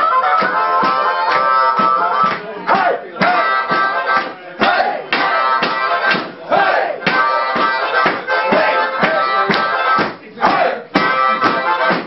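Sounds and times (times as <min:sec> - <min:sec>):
steady beat: 0:00.0 - 0:12.0.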